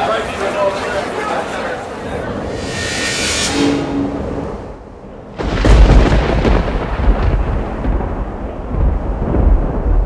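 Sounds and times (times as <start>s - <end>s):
thunder clap and rumble: 3.8s - 10.0s.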